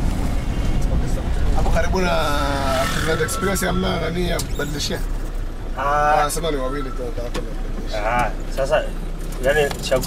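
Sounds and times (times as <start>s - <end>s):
engine and road rumble: 0.0s - 10.0s.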